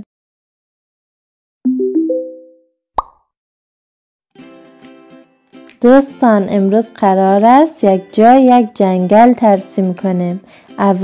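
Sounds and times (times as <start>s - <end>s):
short pop with pitch flick: 3.0s - 3.2s.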